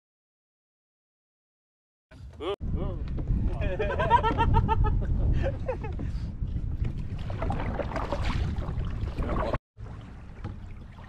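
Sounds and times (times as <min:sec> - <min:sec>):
wind rumbling on microphone: 0:02.2 - 0:11.0
people laughing: 0:03.6 - 0:06.0.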